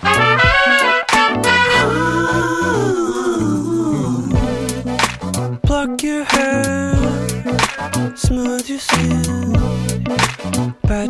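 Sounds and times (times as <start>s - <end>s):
wordless vocal note sliding down: 1.6s - 5.5s, 6.4s - 8.3s
steady bass line: 3.6s - 8.4s, 9.0s - 10.8s.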